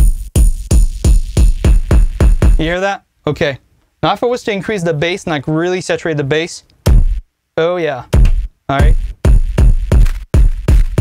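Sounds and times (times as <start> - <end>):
distorted kick drum hits: 0.0 - 2.8, 6.9 - 7.2, 8.1 - 11.0.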